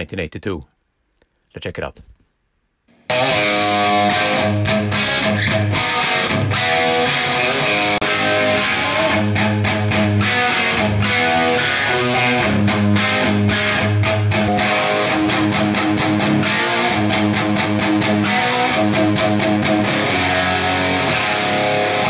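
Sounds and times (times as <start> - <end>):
electric guitar riff: 2.9 - 22.0.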